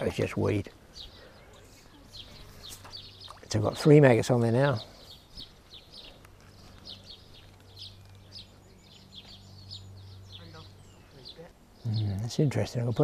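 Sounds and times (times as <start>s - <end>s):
small bird chirping: 0.9s - 13.0s.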